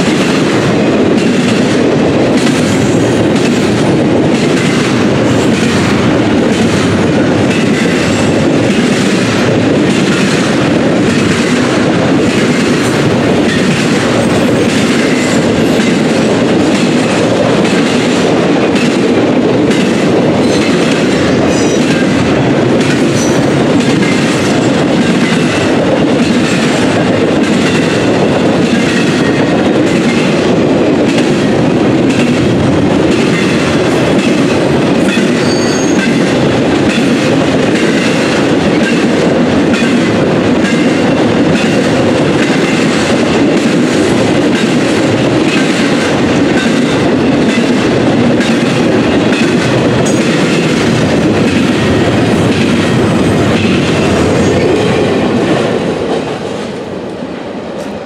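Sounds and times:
wheels clacking over rail joints: 0:00.0 - 0:56.5
freight train rumble: 0:00.0 - 0:58.0
high wheel squeal: 0:35.4 - 0:36.0.

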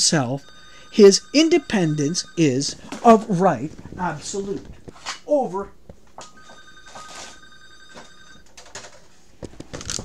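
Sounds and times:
telephone ringing: 0:00.0 - 0:04.6, 0:06.2 - 0:08.9.

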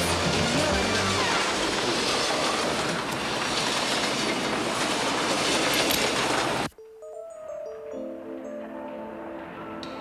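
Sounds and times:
train wheels rushing on rails: 0:00.0 - 0:06.7.

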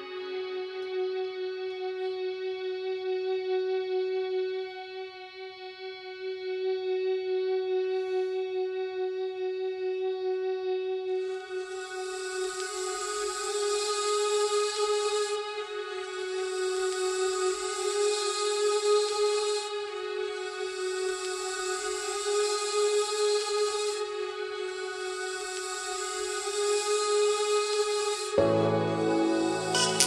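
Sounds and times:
synthesizer holding a note: 0:28.4 - 0:30.0.

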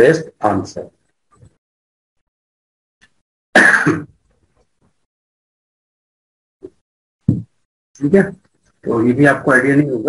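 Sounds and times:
man coughing: 0:03.6 - 0:04.1.

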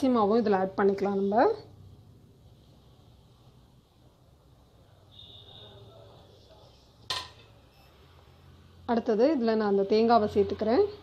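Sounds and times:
dishes clinking: 0:07.1 - 0:07.6.

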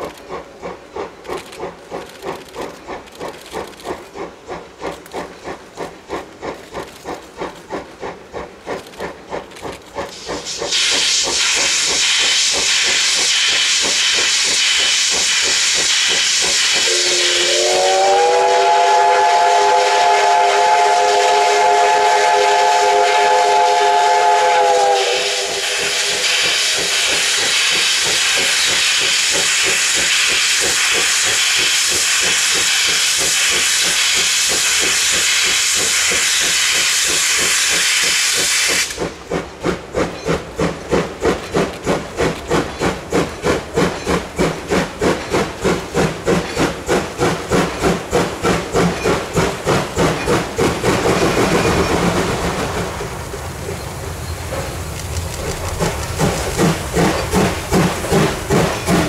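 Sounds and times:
steam hissing: 0:00.0 - 0:59.0
steam whistle blast: 0:14.6 - 0:28.0.

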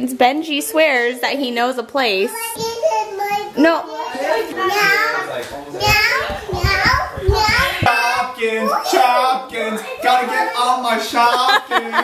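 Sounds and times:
young children calling and babbling: 0:02.1 - 0:11.1
low thumps: 0:05.7 - 0:08.4.

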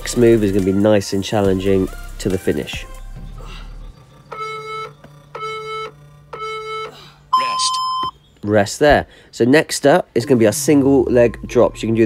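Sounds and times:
electronic countdown beeps: 0:04.2 - 0:08.2.

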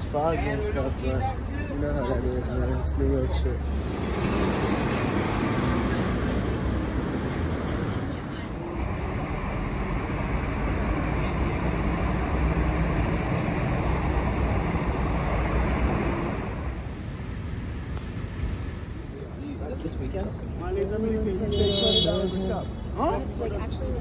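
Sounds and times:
street traffic rumble: 0:00.0 - 0:24.0.

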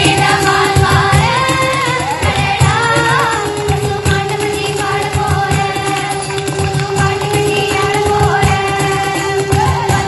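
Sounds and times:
children's choir singing: 0:00.0 - 0:10.0.

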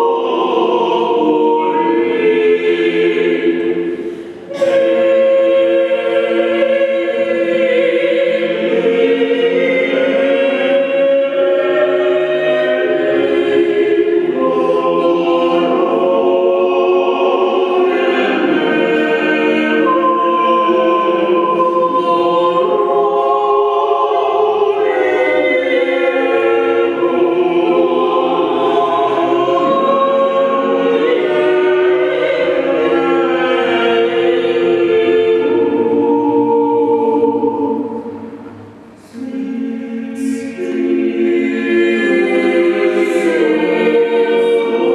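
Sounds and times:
a cappella choir singing: 0:00.0 - 0:44.9.

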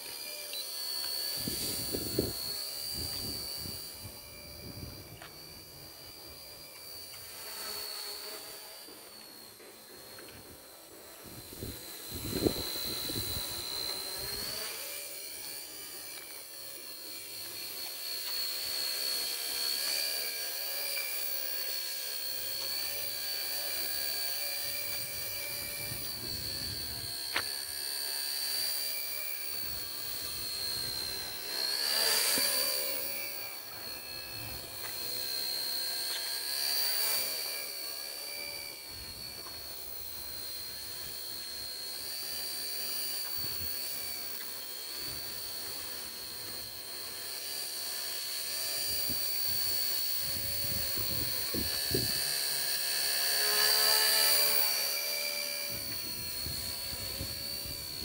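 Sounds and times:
model helicopter motor whine: 0:00.0 - 0:58.0.

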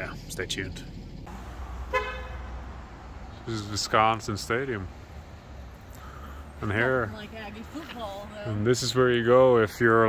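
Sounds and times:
street traffic rumble: 0:00.0 - 0:10.0
vehicle horn toot: 0:01.8 - 0:02.6.

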